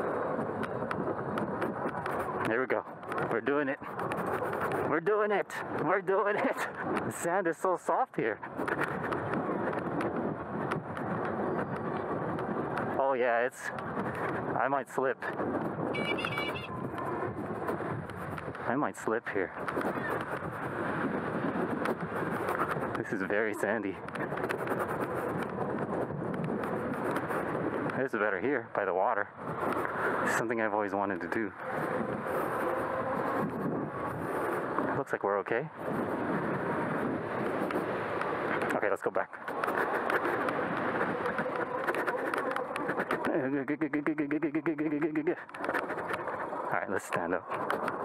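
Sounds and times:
electric bike rolling on sand: 0.0 - 48.0
wind on microphone: 0.0 - 48.0
bike tyres rolling through sand: 35.7 - 43.3.

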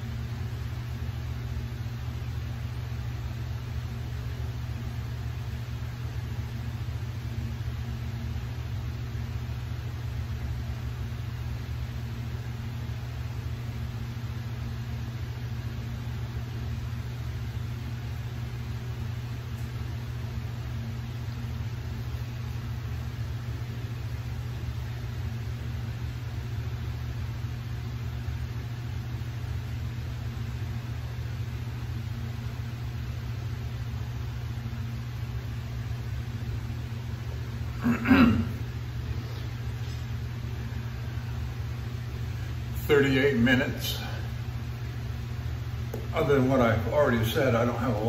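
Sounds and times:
low mechanical hum: 0.0 - 48.0.

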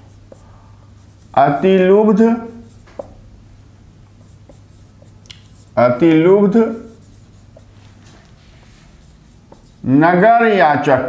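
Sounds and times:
marker pen writing on whiteboard: 0.0 - 3.3, 4.1 - 10.1.

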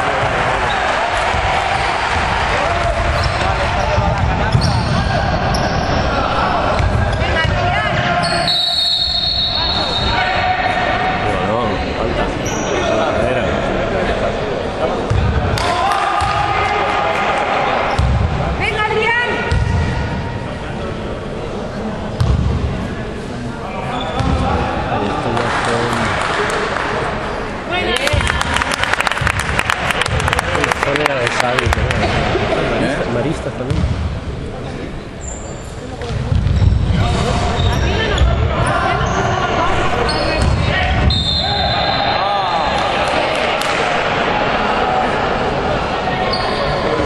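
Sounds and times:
spectators talking: 0.0 - 47.0
sneakers squeaking on floor: 3.1 - 6.0, 6.8 - 10.2, 12.4 - 12.9, 23.8 - 24.5, 35.2 - 42.7, 46.3 - 47.0
basketball bouncing: 19.5 - 19.8, 22.2 - 22.5, 33.7 - 34.0, 36.1 - 36.8.

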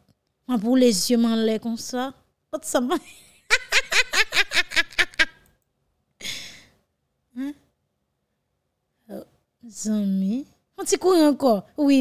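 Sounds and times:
woman laughing: 3.0 - 5.4.

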